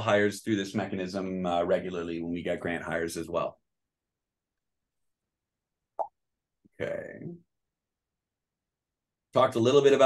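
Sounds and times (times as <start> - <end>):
man speaking: 6.8 - 7.5.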